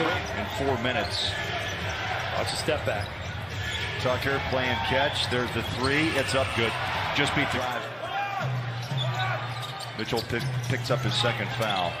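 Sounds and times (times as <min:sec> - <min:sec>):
crowd noise: 0:00.0 - 0:12.0
music over arena speakers: 0:00.4 - 0:12.0.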